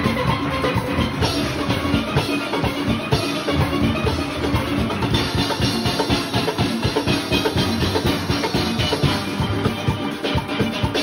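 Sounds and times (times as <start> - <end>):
drums fast steady beat: 0.0 - 11.0.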